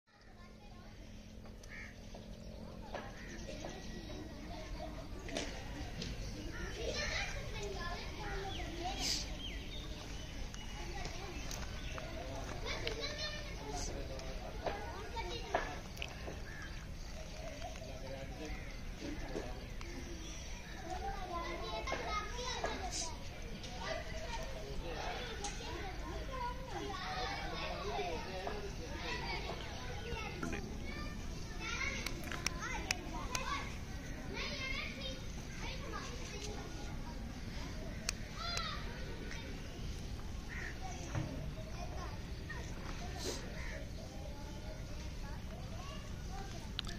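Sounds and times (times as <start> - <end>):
chatter of voices: 0.1 - 46.9.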